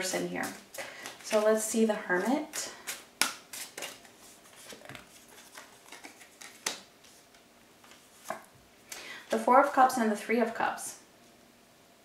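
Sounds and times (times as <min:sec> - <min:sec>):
cards sliding: 0:02.2 - 0:07.2
cards snapping and tapping on table: 0:03.2 - 0:03.9.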